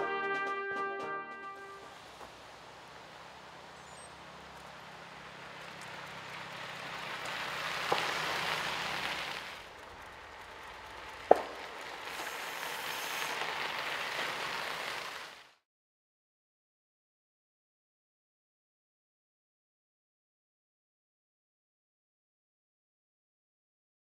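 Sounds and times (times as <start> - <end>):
bicycle tyres crunching on gravel: 1.6 - 15.6.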